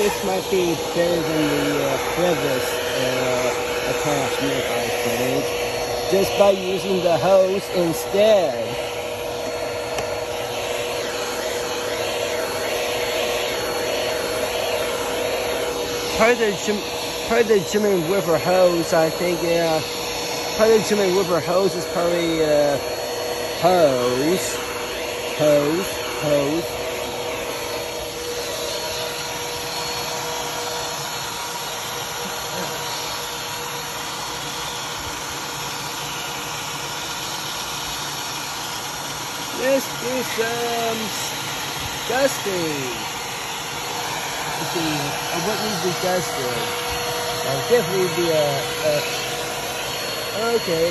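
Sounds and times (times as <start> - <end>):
vacuum cleaner running: 0.0 - 50.9.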